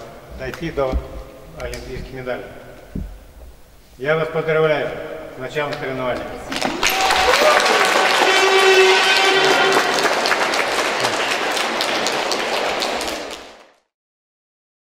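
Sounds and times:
crowd applauding: 6.5 - 13.8.

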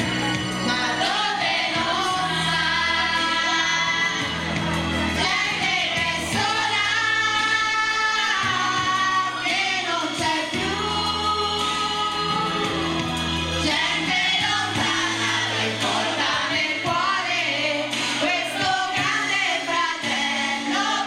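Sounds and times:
karaoke backing track: 0.0 - 21.0
women singing together: 0.6 - 21.0.

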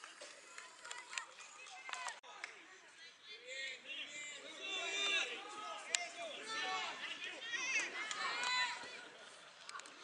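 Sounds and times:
players and spectators shouting: 3.2 - 9.4.

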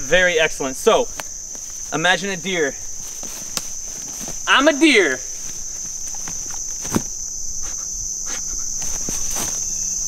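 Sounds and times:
insect chorus droning: 0.0 - 10.0
footsteps in grass: 0.7 - 7.8, 8.7 - 10.0.

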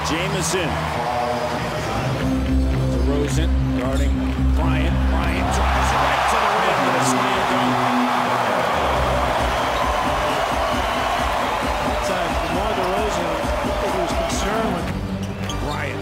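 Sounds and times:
arena crowd din: 0.0 - 16.0
arena music: 0.0 - 16.0.

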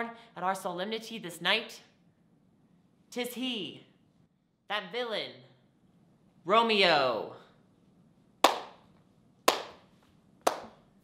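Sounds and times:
hand claps: 8.4 - 8.9, 9.5 - 10.8.

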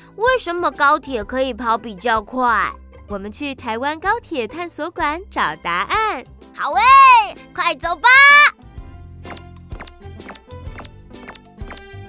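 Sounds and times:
light background music: 0.0 - 12.0
high cartoon voice calling: 6.6 - 8.5.

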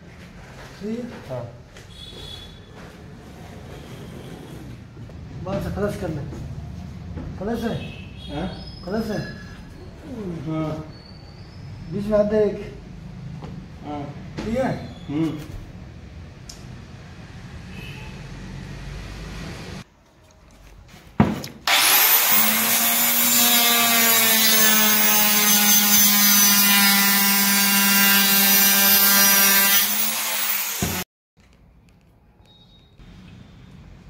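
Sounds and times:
saw blade cutting panel: 21.6 - 31.0
circular saw motor whining: 21.7 - 23.4.

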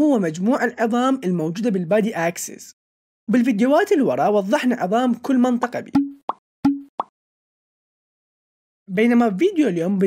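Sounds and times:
pop sound effects: 5.9 - 7.1.

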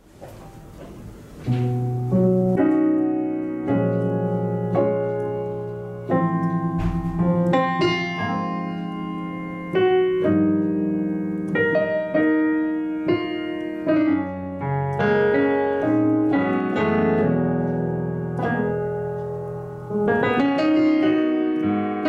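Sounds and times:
piano playing jazz chords: 0.0 - 22.0.

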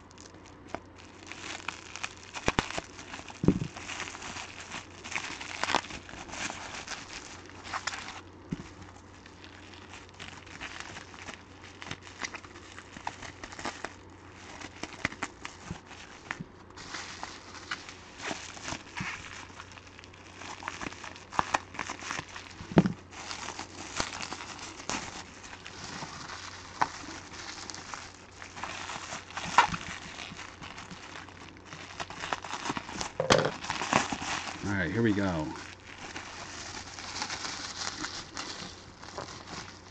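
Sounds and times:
bubble wrap crinkling: 0.0 - 39.9.

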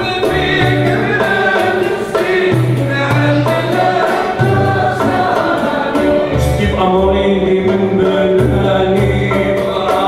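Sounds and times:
man singing: 0.0 - 4.6, 5.3 - 10.0
instrumental accompaniment: 0.0 - 10.0
percussion beat: 0.0 - 10.0.

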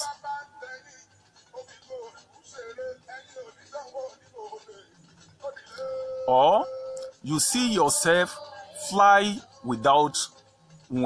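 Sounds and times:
faint background music: 0.0 - 11.0
person singing: 5.4 - 10.3.

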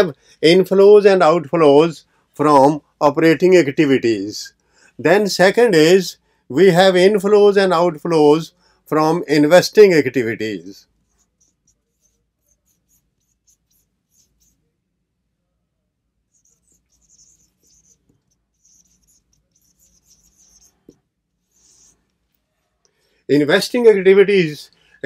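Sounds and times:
marker writing on whiteboard: 10.8 - 14.6, 16.3 - 22.0.

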